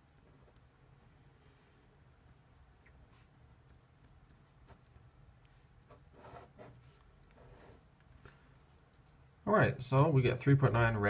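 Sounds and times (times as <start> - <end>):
pen scratching on paper: 3.0 - 3.4, 4.3 - 7.9.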